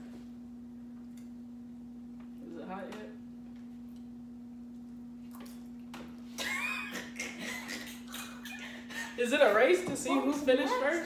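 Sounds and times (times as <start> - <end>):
low hum: 0.0 - 9.2.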